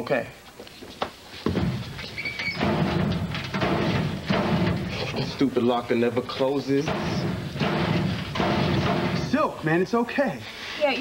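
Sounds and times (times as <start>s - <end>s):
metal locker door banging: 1.5s - 9.5s.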